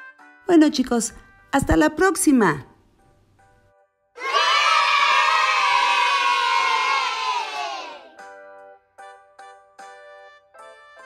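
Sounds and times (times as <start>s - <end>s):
children cheering: 4.2s - 8.2s.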